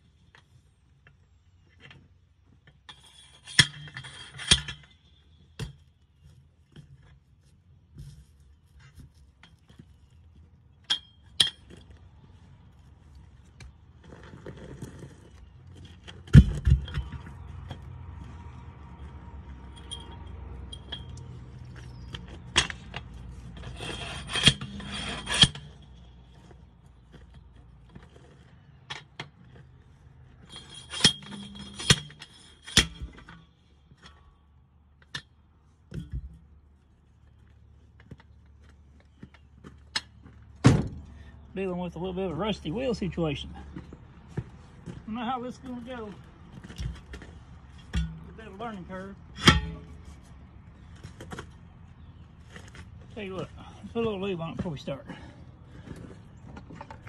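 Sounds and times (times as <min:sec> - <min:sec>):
steel bar clanking on wheel: 0:02.8 - 0:05.7, 0:19.1 - 0:27.3, 0:30.4 - 0:34.3, 0:46.5 - 0:50.1.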